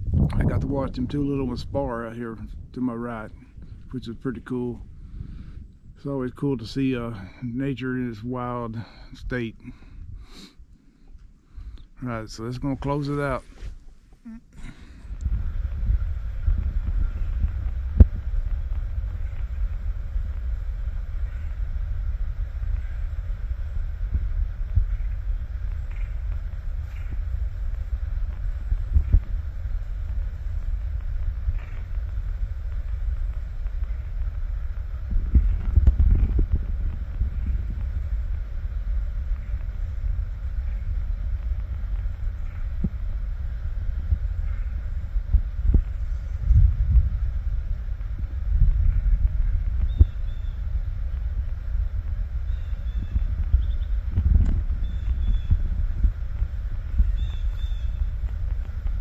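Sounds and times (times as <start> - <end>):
wind buffeting microphone: 0.0 - 10.5, 14.6 - 59.0.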